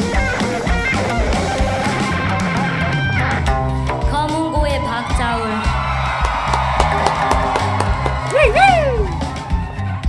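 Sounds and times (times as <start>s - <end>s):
live band music: 0.0s - 10.0s
low bass notes: 0.0s - 10.0s
audience cheering: 4.2s - 10.0s.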